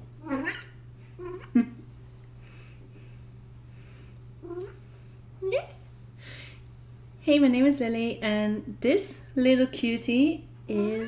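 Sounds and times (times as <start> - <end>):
steady low hum: 0.0 - 11.0
cat meowing: 0.2 - 1.4.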